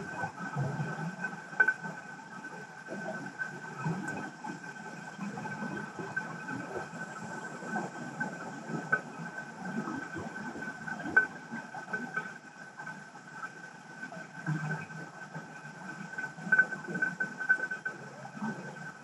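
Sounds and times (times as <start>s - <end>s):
small clicks and ticks: 0.0s - 19.0s.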